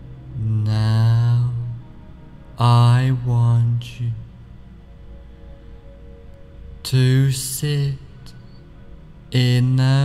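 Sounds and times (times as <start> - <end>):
man speaking slowly in monotone: 0.3 - 1.9, 2.5 - 4.4, 6.8 - 8.6, 9.3 - 10.0.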